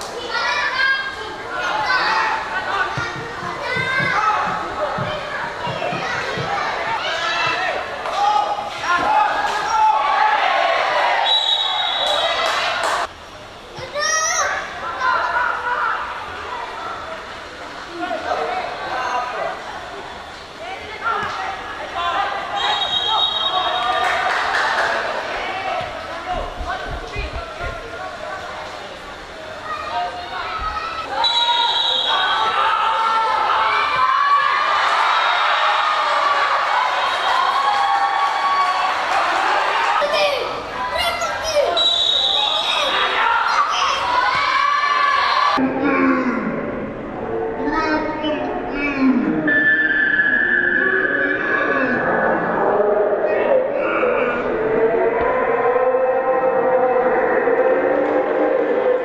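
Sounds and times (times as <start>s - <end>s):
referee's whistle blast: 11.2s - 12.4s, 22.6s - 23.9s, 31.2s - 32.5s, 41.7s - 42.9s
people shouting: 31.1s - 46.3s
people's voices: 38.7s - 59.0s.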